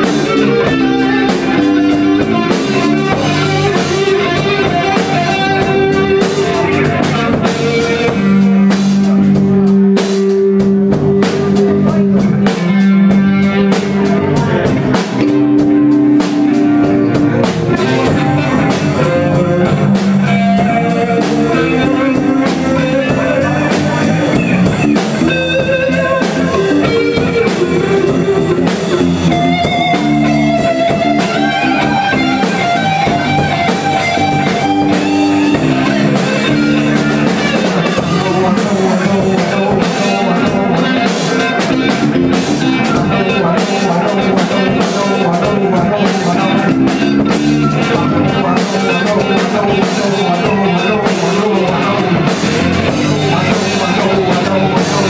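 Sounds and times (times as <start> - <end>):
drum kit: 0.0 - 55.0
electric bass: 0.0 - 55.0
electric guitar lead lines: 0.0 - 55.0.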